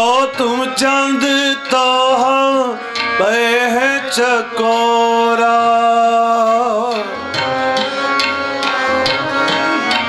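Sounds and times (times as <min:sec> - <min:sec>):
man singing wordless melody: 0:00.0 - 0:07.4
harmonium: 0:00.0 - 0:10.0
singer breathing: 0:02.8 - 0:03.1
tabla strokes: 0:06.6 - 0:10.0.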